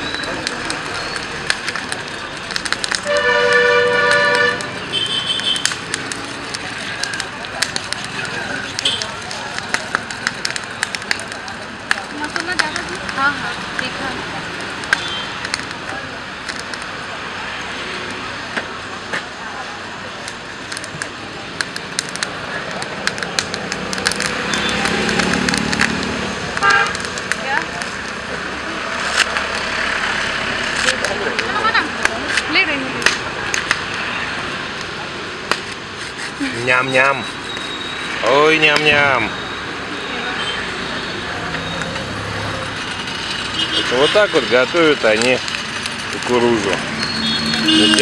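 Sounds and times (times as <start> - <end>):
passing traffic hum: 0.0 - 48.0
people's voices: 0.0 - 48.0
car horn toot: 3.0 - 5.6, 26.6 - 27.0, 47.1 - 48.0
small clicks and knocks: 20.3 - 28.3.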